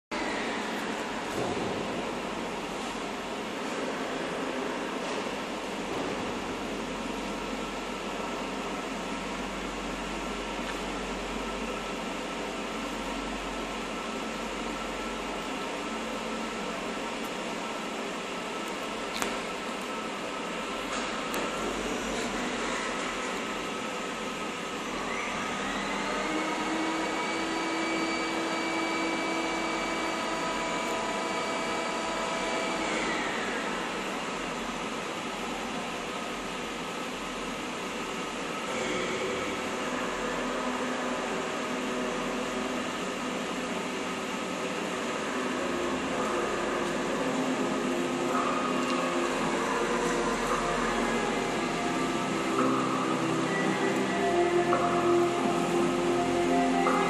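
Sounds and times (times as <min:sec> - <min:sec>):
high whine: 0:00.1 - 0:57.0.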